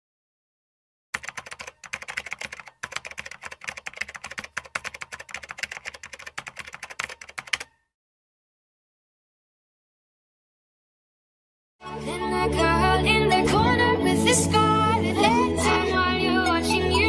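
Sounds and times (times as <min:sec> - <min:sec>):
fast computer keyboard typing: 0:01.2 - 0:07.8.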